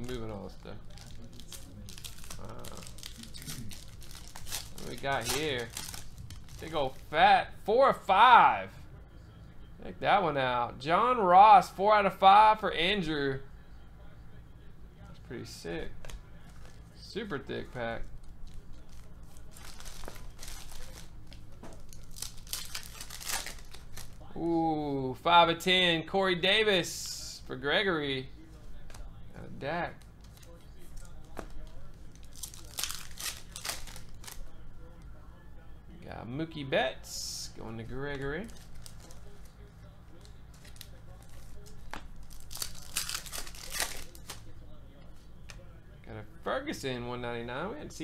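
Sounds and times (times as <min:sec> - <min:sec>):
foil wrapper tearing and crinkling: 0:00.0 - 0:07.0, 0:18.2 - 0:24.3, 0:30.2 - 0:34.4, 0:38.1 - 0:44.5.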